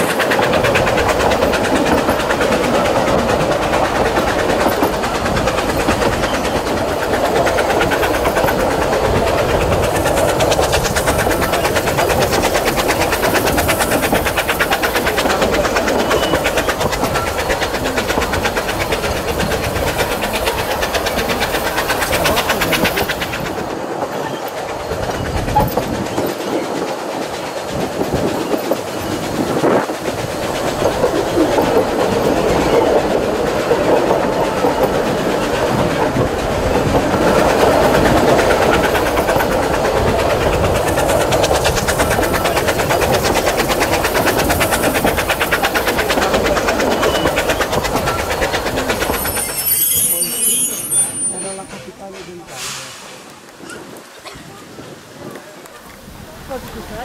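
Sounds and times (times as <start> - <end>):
train wheels rattling: 0.0 - 57.0.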